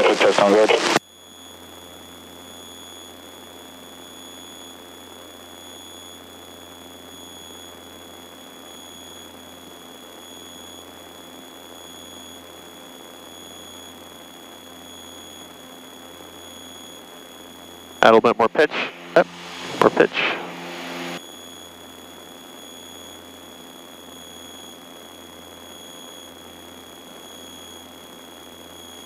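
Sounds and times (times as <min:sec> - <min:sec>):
high-pitched whine: 0:00.0 - 0:01.0, 0:15.0 - 0:28.8
muffled aircraft engine drone: 0:00.0 - 0:29.0.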